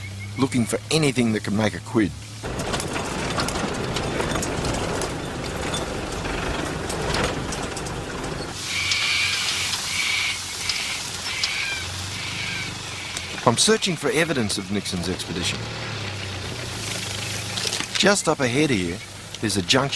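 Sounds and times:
rattling in cab: 2.4s - 8.7s
vehicle engine running: 2.4s - 9.8s, 10.4s - 19.9s.

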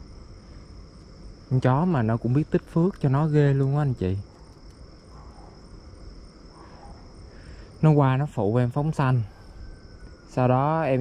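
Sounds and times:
crickets chirping: 0.0s - 11.0s
low background noise: 0.0s - 11.0s.

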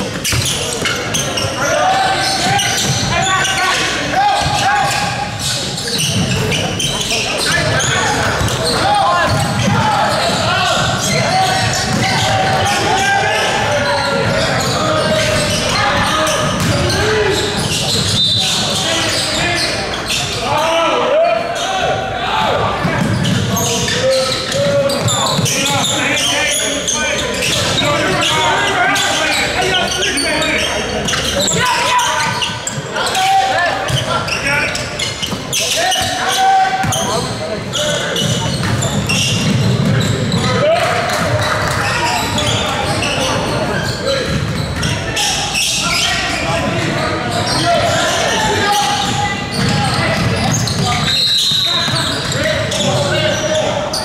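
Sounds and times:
players and spectators calling out: 0.0s - 54.0s
basketball bouncing on court: 8.2s - 12.7s, 15.0s - 17.0s, 38.2s - 40.4s, 44.2s - 44.9s, 49.0s - 51.1s.

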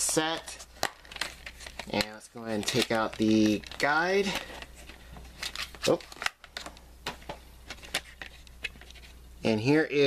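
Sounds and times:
paper rustling: 0.0s - 6.7s.

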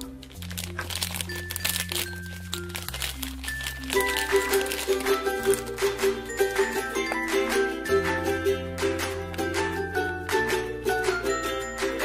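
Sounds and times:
foil bag crinkling: 0.0s - 7.3s
background music with bass notes: 4.0s - 12.0s.

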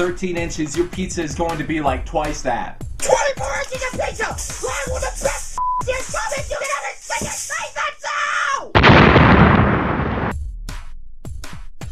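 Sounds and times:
person speaking over music: 0.0s - 6.8s
electronic music beats: 0.0s - 7.6s
short beep: 5.6s - 5.9s
explosion sound effect: 8.8s - 10.4s.

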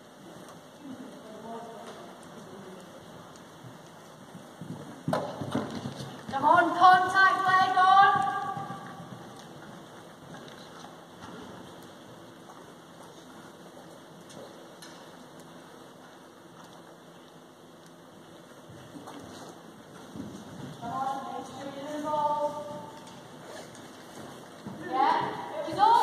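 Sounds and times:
steady indoor hiss: 0.0s - 26.0s.

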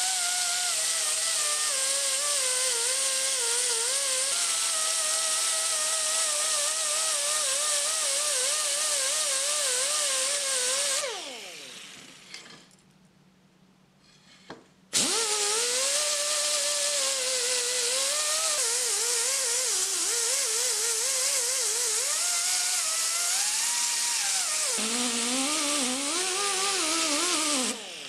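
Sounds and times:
air grinder hissing and whining: 0.0s - 12.5s, 14.2s - 28.0s.

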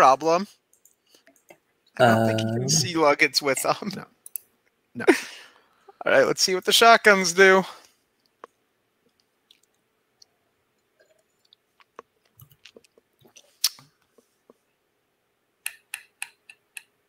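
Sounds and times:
mouth noises: 2.0s - 4.0s.

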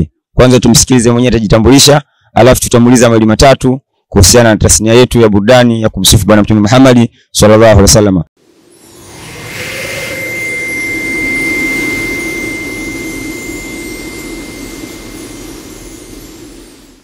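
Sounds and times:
steady high tone: 8.4s - 17.0s.

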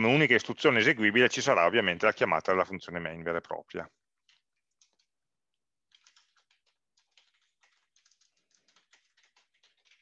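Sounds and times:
typing on computer keyboard: 4.2s - 5.2s, 5.8s - 10.0s.

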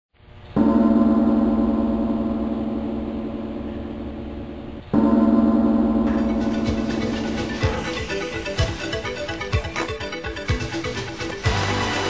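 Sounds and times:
gong ringing: 0.5s - 12.0s.

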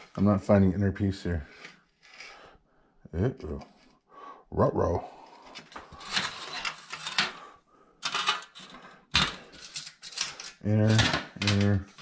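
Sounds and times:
metal strips clattering on stone: 5.9s - 7.4s, 8.0s - 12.0s.

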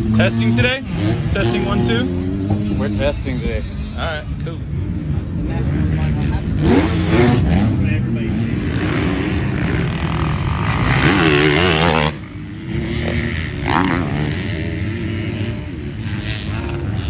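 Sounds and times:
dirt bike engines revving: 0.0s - 17.0s.

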